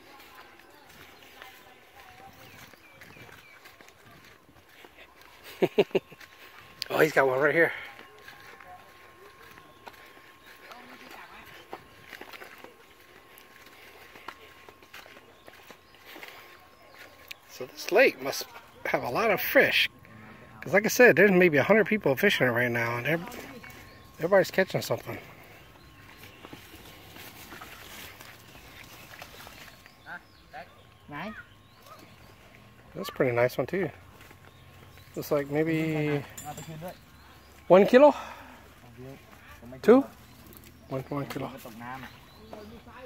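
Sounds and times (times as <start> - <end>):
distant voices: 0.0 - 43.0
footsteps on dirt path: 0.0 - 43.0.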